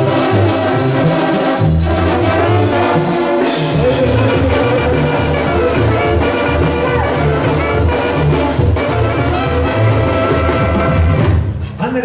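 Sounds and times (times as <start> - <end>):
bass line: 0.0 - 11.4
trumpets and trombones: 0.0 - 11.6
live band playing dance music: 0.0 - 12.0.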